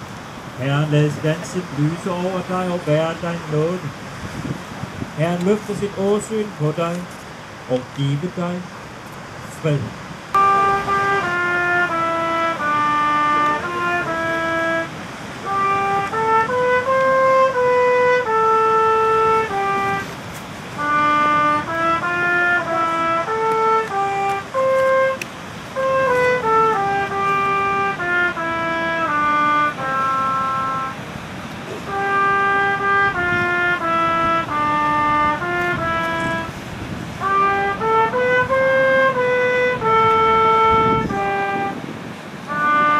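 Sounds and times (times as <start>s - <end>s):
slow trumpet melody: 10.3s - 42.9s.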